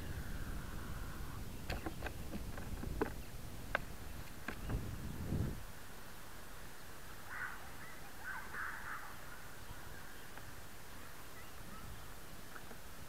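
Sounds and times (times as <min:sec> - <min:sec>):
faint bird calls: 0:00.0 - 0:02.4, 0:06.5 - 0:12.9
outdoor background noise: 0:00.0 - 0:13.0.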